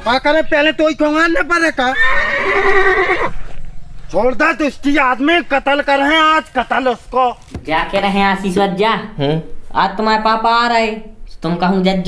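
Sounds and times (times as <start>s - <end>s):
horse neighing: 1.8s - 3.6s.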